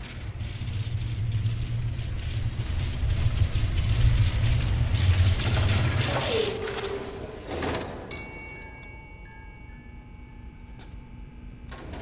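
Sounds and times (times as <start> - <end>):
low steady hum: 0.0 - 12.0
metal chime ringing: 8.0 - 11.2.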